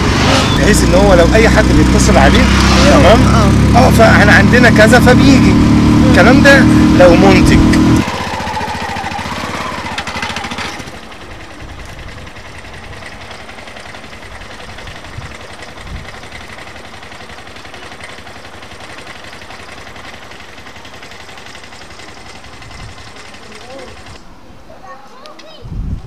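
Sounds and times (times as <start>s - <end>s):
auto-rickshaw engine chugging: 0.0s - 24.2s.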